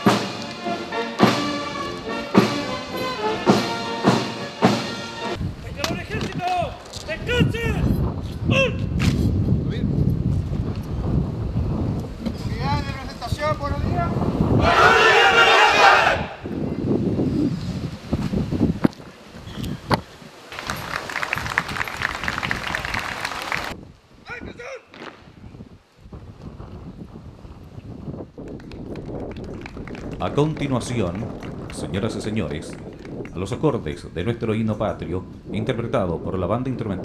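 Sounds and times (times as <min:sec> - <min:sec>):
wind rumbling on microphone: 0:05.4 - 0:37.0
shouted military command: 0:14.6 - 0:16.4
crowd applause: 0:20.5 - 0:23.8, 0:28.5 - 0:31.8.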